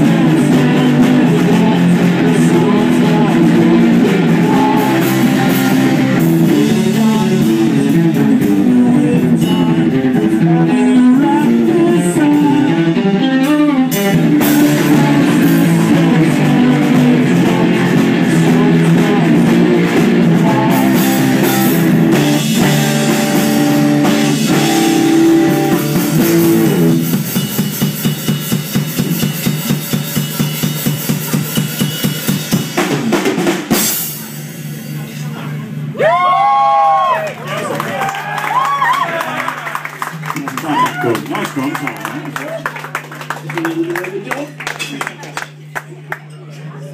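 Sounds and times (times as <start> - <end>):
distorted electric guitar: 0.0 - 36.0
drum kit: 0.0 - 37.1
bass guitar: 0.0 - 46.9.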